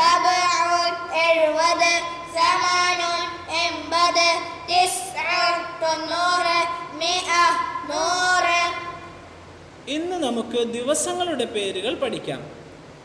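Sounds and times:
child singing: 0:00.0 - 0:08.9.

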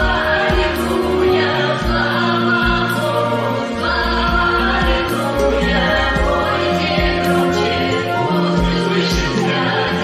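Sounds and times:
mixed choir singing gospel: 0:00.0 - 0:10.0.

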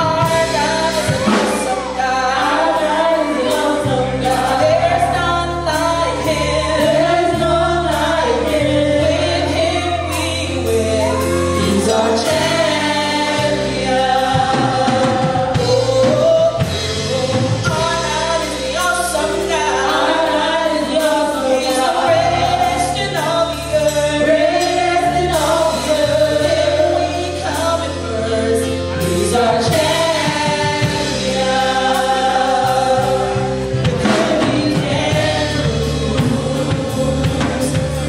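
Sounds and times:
gospel singers with a band: 0:00.0 - 0:38.0
held bass notes: 0:00.0 - 0:38.0.

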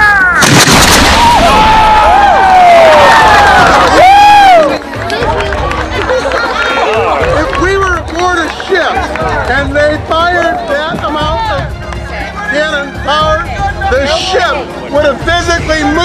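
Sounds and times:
people shouting and whooping: 0:00.0 - 0:04.9.

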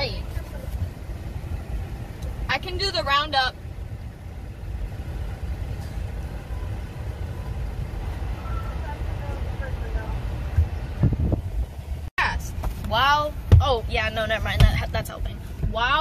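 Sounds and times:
car rumble inside cabin: 0:00.0 - 0:16.0.

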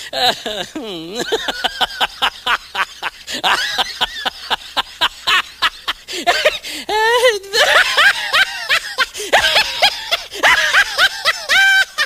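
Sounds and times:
high-pitched laughter: 0:00.2 - 0:12.0.

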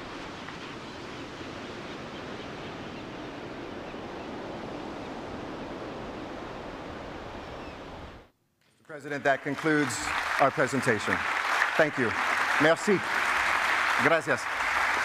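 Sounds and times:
ocean waves breaking: 0:00.0 - 0:08.2, 0:09.6 - 0:15.0.

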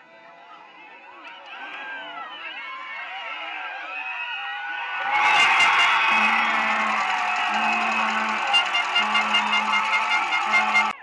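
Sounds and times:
crowd cheering and screaming: 0:01.2 - 0:11.0
low steady horn tone: 0:05.2 - 0:11.0.

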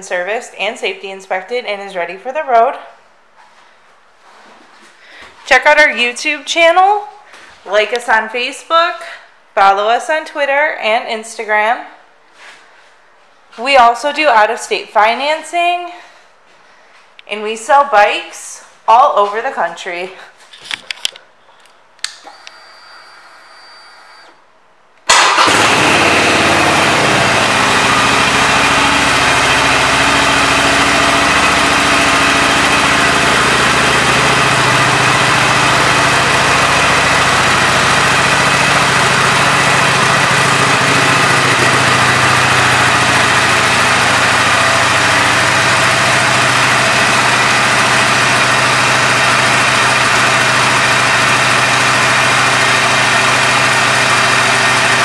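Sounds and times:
motorcycle engine starting and idling: 0:25.1 - 0:55.0.

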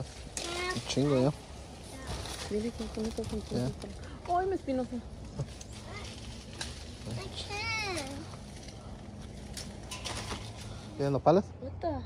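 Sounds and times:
rustling of leaves: 0:00.0 - 0:11.4.

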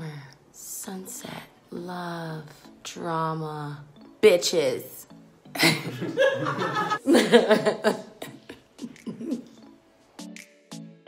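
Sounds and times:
woman laughing: 0:05.5 - 0:09.5.

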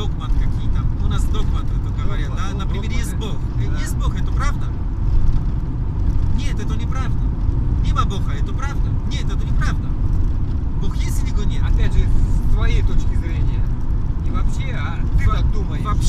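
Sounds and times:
man talking: 0:00.0 - 0:04.8, 0:06.3 - 0:07.2, 0:07.8 - 0:10.0, 0:10.8 - 0:16.0
van engine and road noise: 0:00.0 - 0:16.0.

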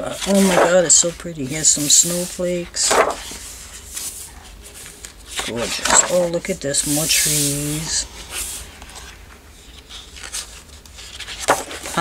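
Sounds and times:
paper rustling: 0:00.0 - 0:12.0.

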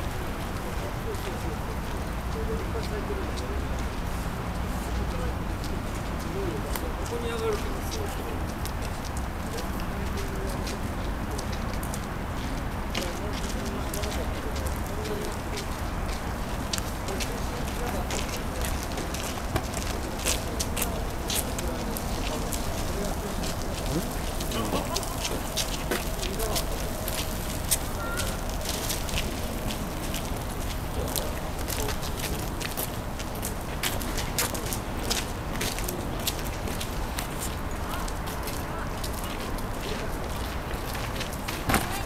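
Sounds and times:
distant chatter of people: 0:00.0 - 0:42.0.

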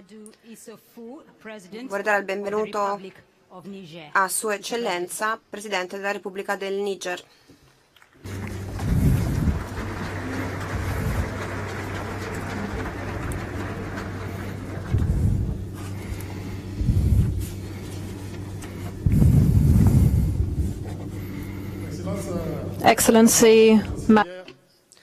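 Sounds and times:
microphone electrical hum: 0:08.2 - 0:24.3
low rumble: 0:08.3 - 0:24.1
dull low thumps: 0:08.4 - 0:09.9, 0:10.6 - 0:24.1.

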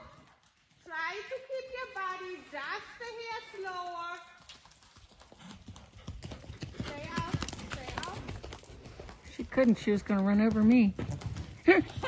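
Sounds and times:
horse hoofbeats on sand: 0:00.1 - 0:12.0.

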